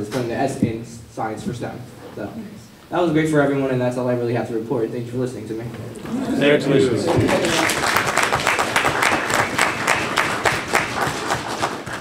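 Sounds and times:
people applauding: 6.0s - 12.0s.

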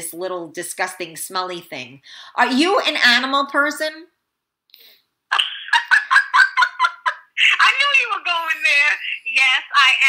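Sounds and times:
woman cackling laugh: 5.3s - 7.7s.

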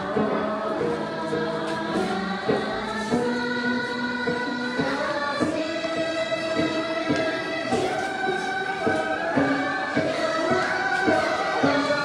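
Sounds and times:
group singing in unison: 0.0s - 12.0s.

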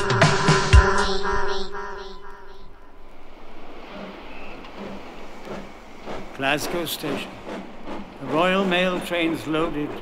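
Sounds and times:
steady rushing noise: 2.6s - 10.0s.

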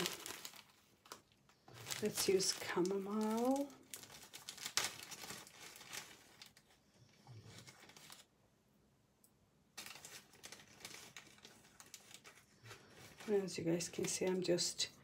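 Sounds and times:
dried herbs crinkling and rustling: 0.0s - 8.3s, 9.8s - 15.0s.

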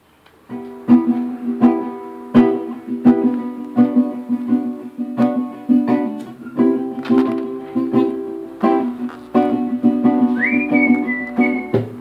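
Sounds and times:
live band guitar and drums: 0.6s - 12.0s
high pure whistle: 10.4s - 11.9s.

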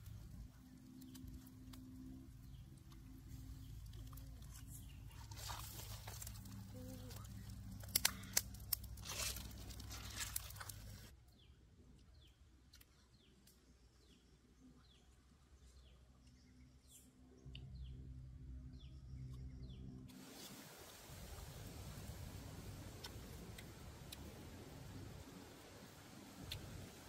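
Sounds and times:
wood fire crackling and popping: 6.1s - 11.1s.

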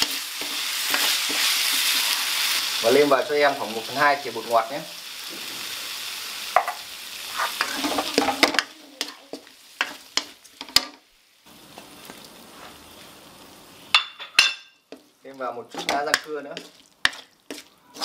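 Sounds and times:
food sizzling in a wok: 0.0s - 18.0s
wooden spatula scraping a pan: 6.6s - 10.9s, 14.9s - 18.0s.

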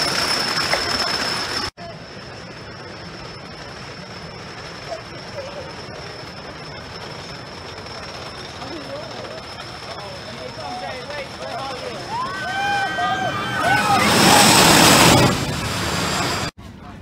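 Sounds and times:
thin high whine: 0.0s - 16.6s.

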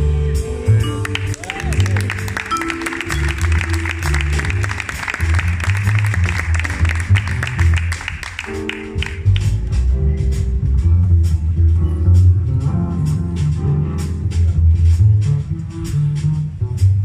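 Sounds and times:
double bass notes: 0.0s - 17.0s
drums: 0.0s - 17.0s
jazz band playing: 0.0s - 17.0s
audience applause: 1.0s - 9.6s.

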